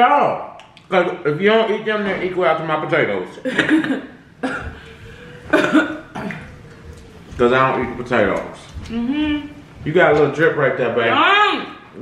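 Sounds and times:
person coughing: 3.5 - 4.9, 5.5 - 6.6.

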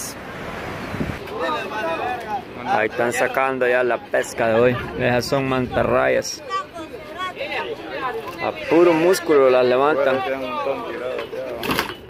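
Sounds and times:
men talking in a group: 1.2 - 11.9.

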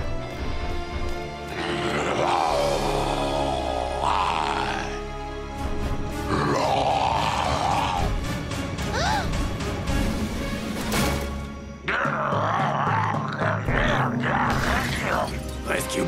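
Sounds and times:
background music: 0.0 - 16.0
cartoon monster growling: 1.6 - 5.0, 6.3 - 8.2.

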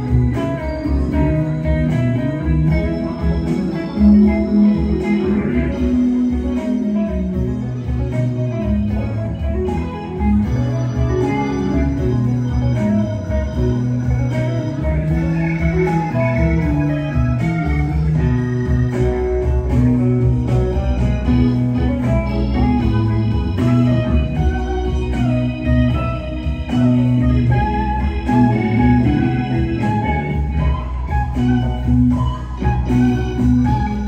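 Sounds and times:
electric guitar: 0.0 - 34.0
rock band playing: 0.0 - 34.0.

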